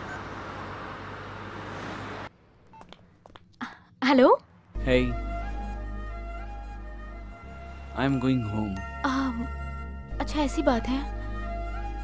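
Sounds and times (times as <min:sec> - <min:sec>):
car road and engine noise: 0:00.0 - 0:03.2.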